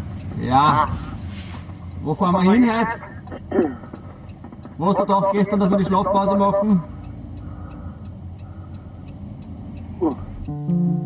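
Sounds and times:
car engine and road rumble: 0.0 - 11.0
faint ticking: 0.0 - 11.0.

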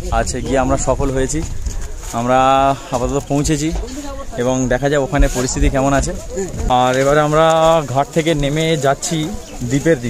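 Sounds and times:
wind rumble on microphone: 0.0 - 8.3
man talking: 0.0 - 10.0.

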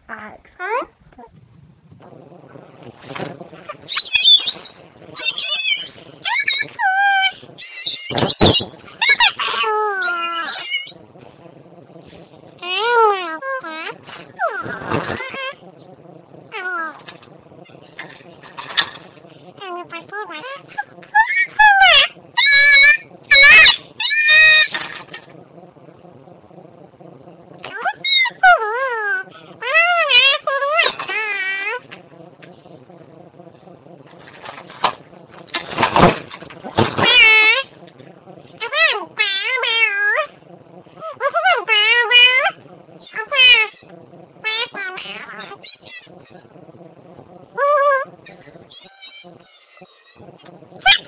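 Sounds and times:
breathy noise: 0.0 - 51.0.

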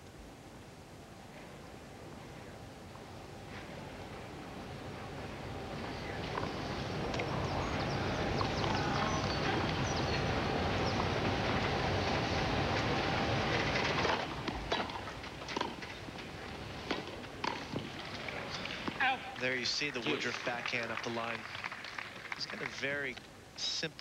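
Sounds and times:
crowd noise: 1.4 - 14.5, 16.0 - 24.0
tennis ball struck by racquets: 14.0 - 16.0, 16.6 - 17.9.

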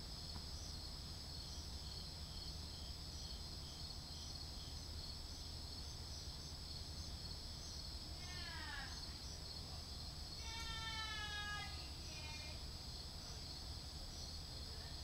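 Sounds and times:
crickets chirping: 0.0 - 15.0
distant drawn-out cries: 8.1 - 9.3, 10.3 - 14.3.

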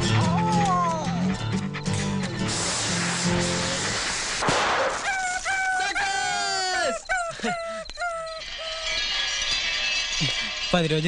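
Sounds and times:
crickets chirring: 5.0 - 11.0
dog whimpering: 6.3 - 9.0.

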